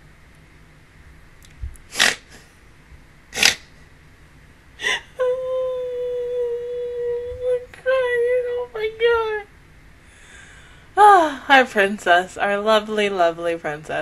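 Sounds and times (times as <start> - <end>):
woman breathy gasps: 4.8 - 5.2
woman squealing whimper: 4.8 - 7.7.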